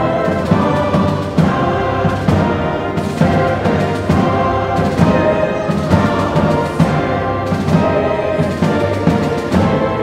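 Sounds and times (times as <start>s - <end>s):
orchestra playing: 0.0s - 10.0s.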